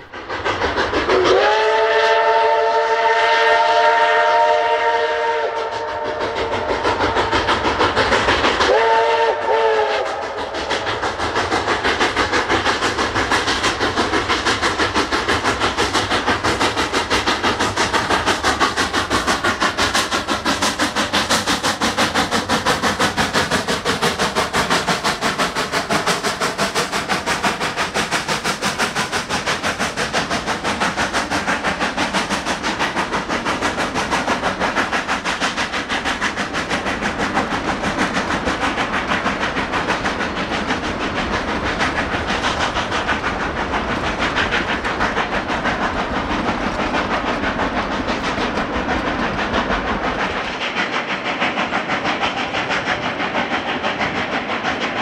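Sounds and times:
steam locomotive exhaust beats: 0.0s - 55.0s
steam whistle blasts: 1.1s - 6.8s, 8.7s - 10.4s.

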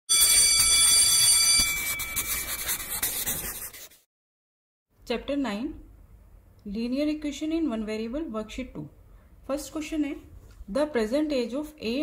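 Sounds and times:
bright high ringing tone: 0.1s - 2.8s
scratchy rubbing noise: 1.5s - 4.1s.

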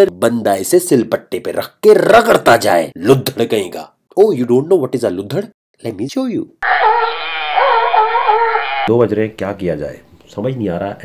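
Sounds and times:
sea lion call: 6.6s - 8.9s.

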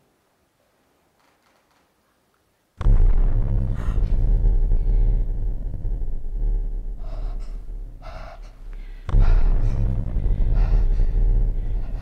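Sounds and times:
steady hum: 2.7s - 12.0s
deep low rumble: 2.8s - 12.0s
breathy gasps: 7.0s - 12.0s.

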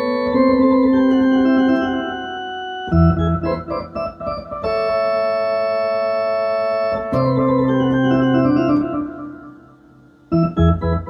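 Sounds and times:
ballpark organ playing: 0.0s - 11.0s.

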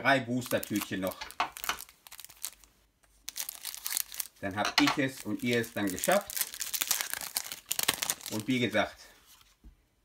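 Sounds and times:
foil wrapper crinkling: 0.4s - 8.9s.

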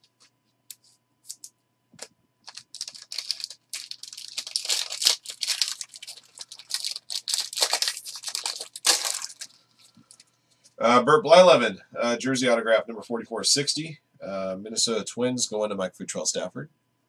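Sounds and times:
foil wrapper tearing and crinkling: 2.4s - 10.2s.

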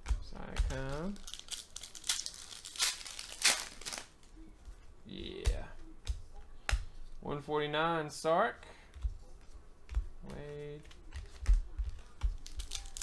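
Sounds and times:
foil wrapper ripping and crinkling: 0.7s - 4.1s, 12.4s - 13.0s.

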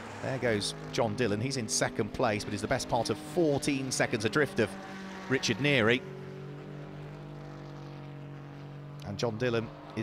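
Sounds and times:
race car engine running: 0.0s - 10.0s.

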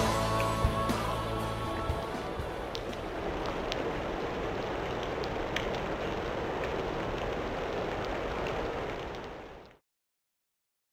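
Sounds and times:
sharp water drips: 0.0s - 9.8s
steady rain falling: 0.0s - 9.8s.

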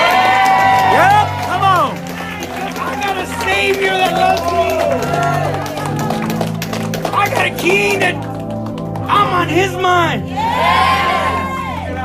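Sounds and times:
low steady keyboard note: 0.9s - 10.4s
long loud cry: 10.4s - 12.0s
worshippers shouting and whooping: 10.4s - 12.0s.

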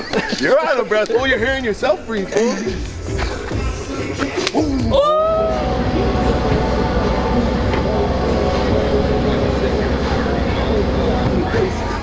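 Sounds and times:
vehicle engine idling: 5.0s - 12.0s.

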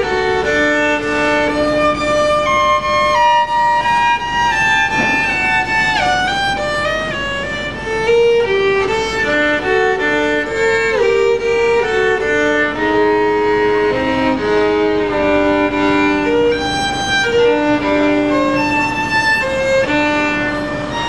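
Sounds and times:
solo violin melody: 0.0s - 21.0s.

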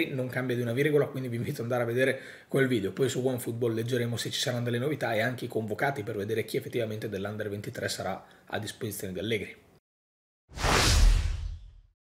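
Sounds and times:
whoosh: 10.5s - 11.9s.

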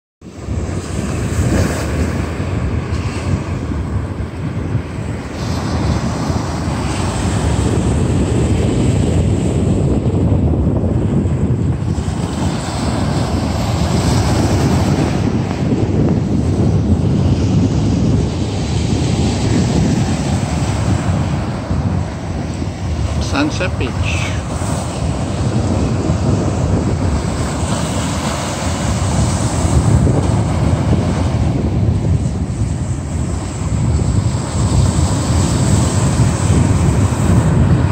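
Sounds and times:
ocean surf over rocks: 0.2s - 37.9s
wind buffeting microphone: 0.2s - 37.9s.

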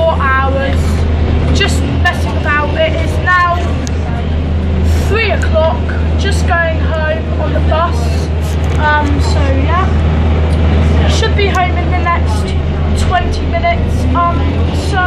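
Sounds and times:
boy talking: 0.0s - 4.2s, 5.1s - 15.0s
bus engine droning: 0.0s - 15.0s.

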